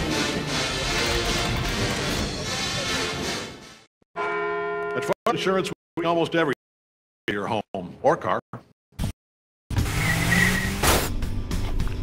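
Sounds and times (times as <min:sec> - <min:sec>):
music: 0:00.0 - 0:03.9, 0:10.8 - 0:12.0.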